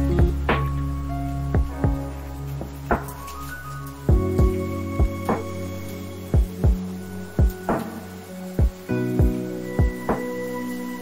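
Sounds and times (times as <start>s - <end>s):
deep kick drum beat: 0.0s - 0.6s, 1.6s - 2.0s, 4.1s - 5.2s, 6.4s - 6.8s, 8.6s - 10.0s.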